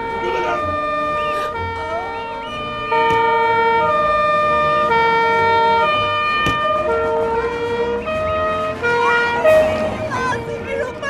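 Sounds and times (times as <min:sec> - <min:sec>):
two-tone police siren: 0:00.0 - 0:11.0.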